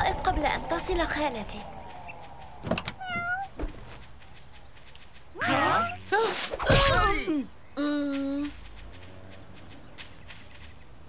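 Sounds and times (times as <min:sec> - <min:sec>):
cat meowing: 0:03.0 - 0:03.5.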